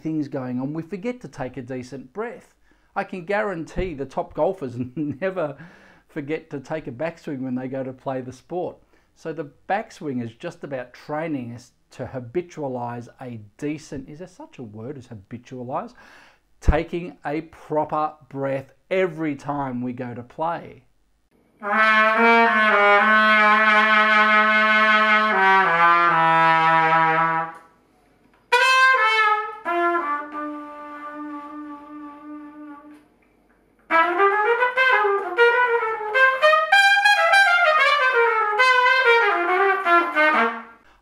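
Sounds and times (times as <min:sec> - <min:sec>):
solo trumpet playing: 0:21.6 - 0:27.8, 0:28.5 - 0:33.0, 0:33.9 - 0:40.9.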